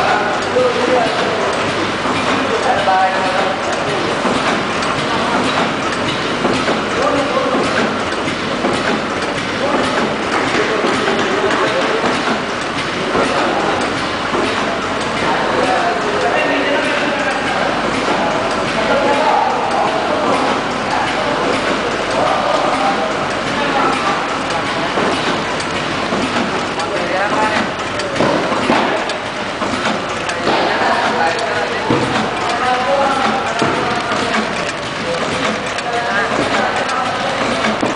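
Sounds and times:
packing machine clattering: 0.0s - 37.9s.

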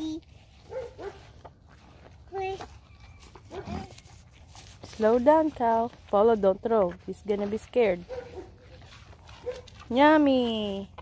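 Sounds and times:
calf tearing grass: 2.4s - 6.3s, 7.6s - 10.8s.

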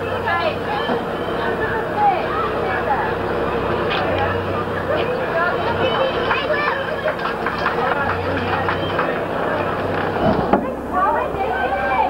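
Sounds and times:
spectators chattering: 0.0s - 12.0s
steady low hum: 0.0s - 12.0s.

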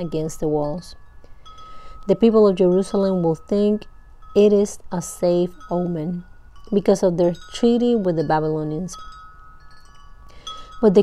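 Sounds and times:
wind chime ringing: 0.0s - 11.0s.

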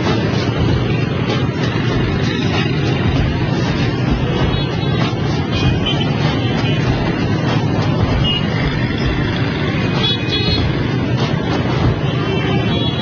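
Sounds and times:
motorbike and scooter traffic: 0.0s - 13.0s.

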